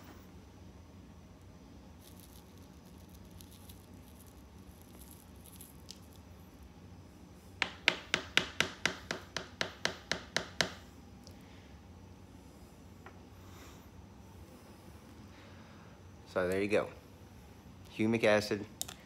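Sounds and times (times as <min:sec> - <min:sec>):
spoon scraping through soil: 0:02.0 - 0:06.2.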